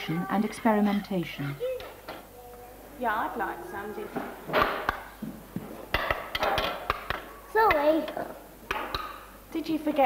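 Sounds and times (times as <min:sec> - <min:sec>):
wooden spoons knocking metal pans: 0:05.9 - 0:09.3.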